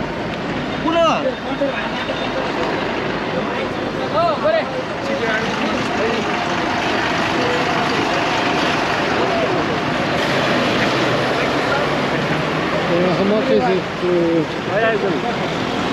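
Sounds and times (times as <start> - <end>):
vehicles running: 0.0 - 15.9.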